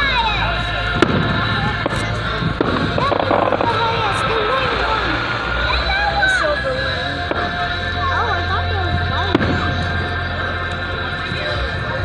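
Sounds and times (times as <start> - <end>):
firework bang: 0.9 - 4.6, 9.2 - 10.0
firework pops: 1.0 - 4.0.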